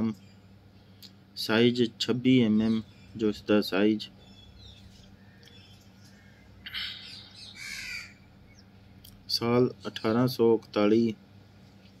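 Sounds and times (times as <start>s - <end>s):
bird calls: 4.1s - 8.9s.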